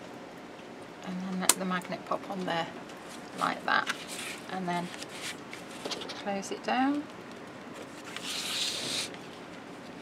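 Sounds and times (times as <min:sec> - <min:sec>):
hand rubbing on paper: 0:03.4 - 0:05.4, 0:07.9 - 0:09.2.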